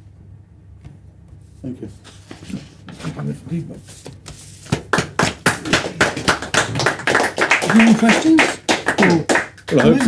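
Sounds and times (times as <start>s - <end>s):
audience applauding: 4.9s - 10.0s.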